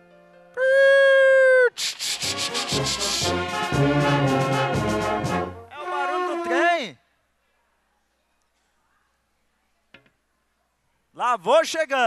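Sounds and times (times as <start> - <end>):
steam train chugging: 1.8 - 5.0.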